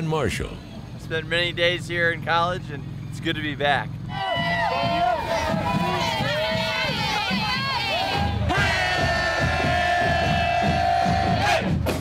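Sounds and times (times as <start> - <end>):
crowd cheering and shouting: 4.0 - 12.0
music with steady beat: 4.4 - 12.0.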